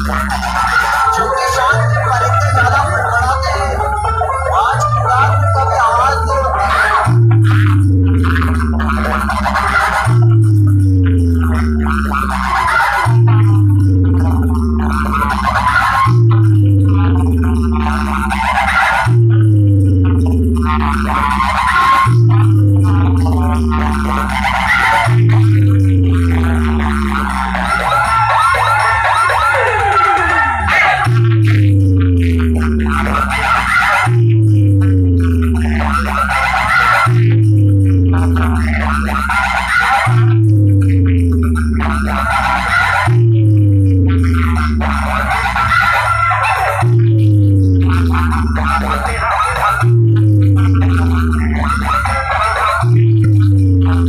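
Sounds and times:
loud dance music with sliding bass: 0:00.0 - 0:54.0.

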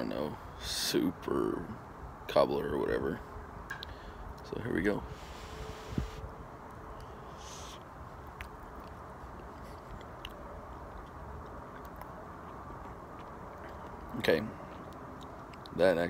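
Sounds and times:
outdoor background noise: 0:00.0 - 0:16.0
mouth clicks: 0:07.0 - 0:14.0
man chewing soft food: 0:07.0 - 0:15.8.

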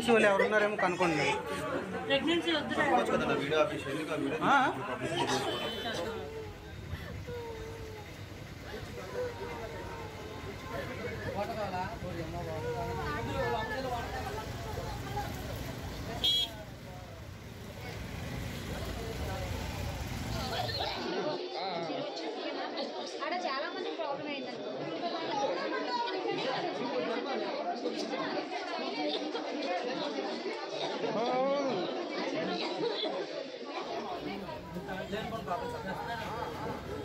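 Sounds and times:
people talking over one another: 0:00.0 - 0:37.0.

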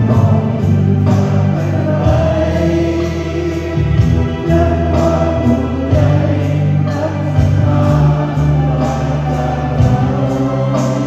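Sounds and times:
amplified musical accompaniment: 0:00.0 - 0:11.0
group singing together: 0:00.0 - 0:11.0
sustained bass line: 0:00.0 - 0:11.0.

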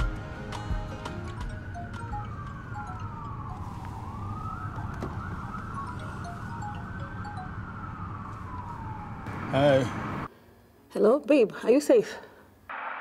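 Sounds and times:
siren wailing: 0:01.2 - 0:10.3
phone ringing: 0:05.8 - 0:08.1.

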